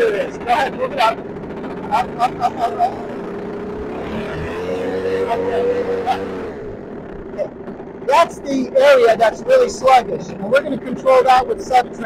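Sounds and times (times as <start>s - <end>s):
model airplane motor and propeller: 0.0s - 12.0s.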